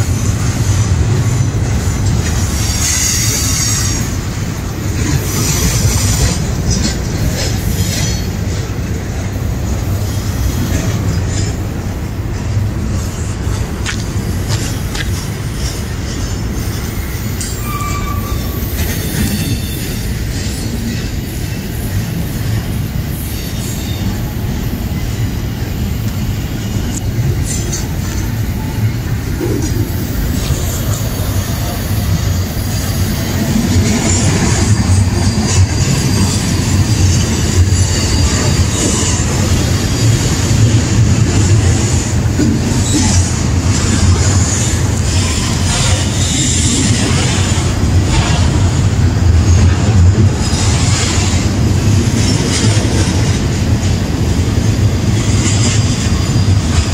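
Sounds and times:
freight train wheels rumbling: 0.0s - 56.9s
train clanks: 0.0s - 56.9s
wheel squeals: 15.6s - 22.1s, 26.1s - 48.7s, 55.2s - 56.9s.

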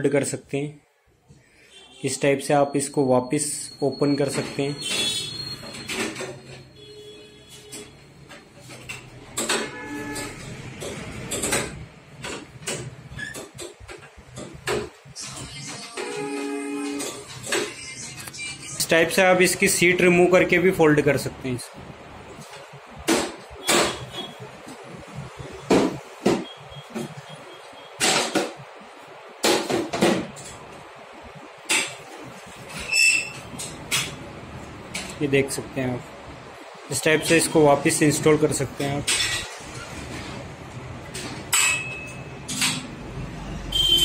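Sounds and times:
chair creaking: 31.7s - 35.4s
metal chair frame clattering: 38.8s - 40.4s.

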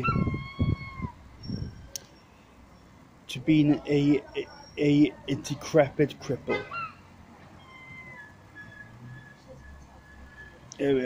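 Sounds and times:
gull calling: 0.0s - 1.2s, 6.5s - 9.4s.

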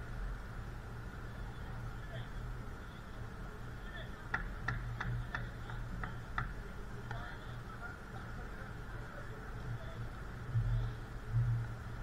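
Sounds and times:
steady low hum: 0.0s - 12.0s
faint distant voices: 1.0s - 12.0s
sharp taps: 4.3s - 7.2s.

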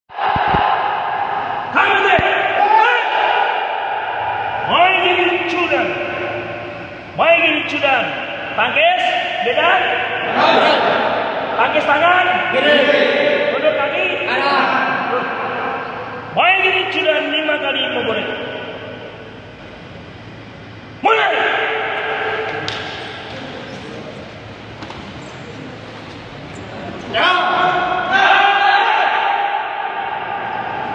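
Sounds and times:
shouted voices echoing: 0.1s - 19.5s, 21.0s - 24.5s, 26.8s - 30.9s
drawn-out shout: 27.1s - 30.9s.

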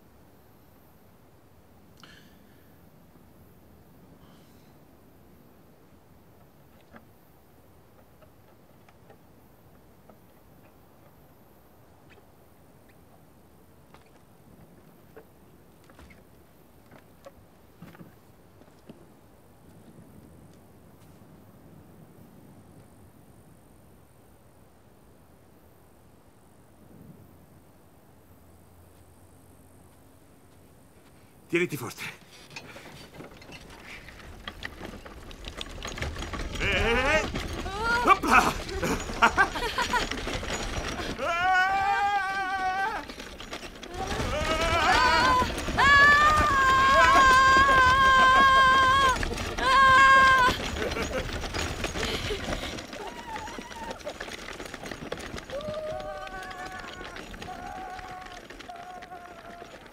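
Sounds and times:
wooden cart rattling over grass: 13.8s - 20.3s, 31.6s - 59.9s
person whooping and laughing: 36.6s - 40.3s, 40.9s - 43.1s, 43.9s - 51.4s, 52.0s - 54.2s, 55.5s - 59.7s.

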